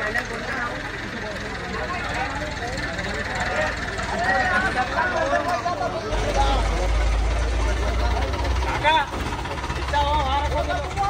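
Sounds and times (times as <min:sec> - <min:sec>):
crane diesel engine rumbling: 0:00.0 - 0:11.0.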